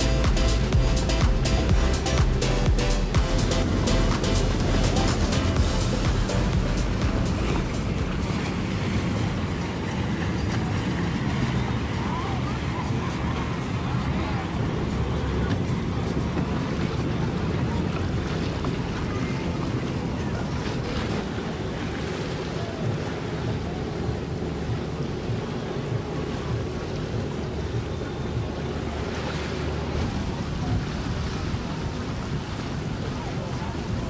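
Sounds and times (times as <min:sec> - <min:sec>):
water washing around boats: 0:00.0 - 0:34.0
wind buffeting microphone: 0:01.3 - 0:34.0.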